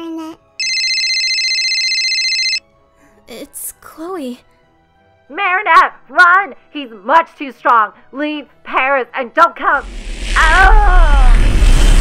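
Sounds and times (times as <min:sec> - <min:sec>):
mobile phone trilling ring: 0:00.6 - 0:02.6.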